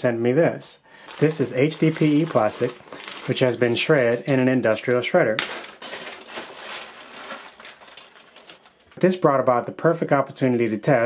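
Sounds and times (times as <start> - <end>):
plastic bag crinkling: 1.0 - 9.0
plastic flakes rustling and clicking: 1.0 - 9.0.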